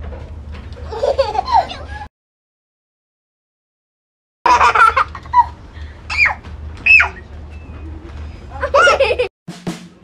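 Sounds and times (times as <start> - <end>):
toddler squealing and laughing: 5.4 - 7.3, 8.6 - 9.2.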